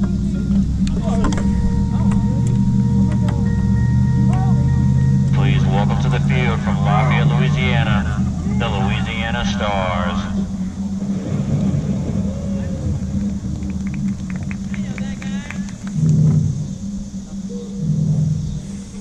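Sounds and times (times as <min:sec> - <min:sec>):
low engine hum: 0:00.0 - 0:19.0
voices talking and calling out: 0:00.0 - 0:19.0.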